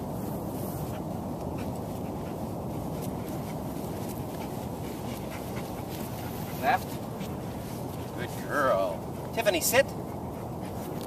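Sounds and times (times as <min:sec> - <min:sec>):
dog panting: 0:00.8 - 0:11.0.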